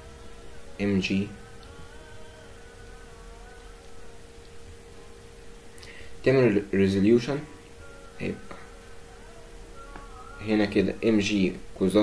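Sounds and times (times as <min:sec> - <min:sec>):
faint buzzing hum: 0:00.0 - 0:12.0
thin wavering whine: 0:00.0 - 0:12.0.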